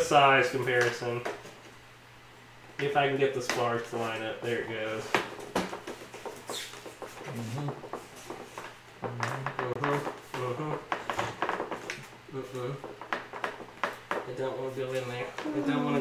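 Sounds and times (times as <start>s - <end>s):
foam clicks taps and creaks: 10.9s - 12.1s, 12.8s - 14.4s.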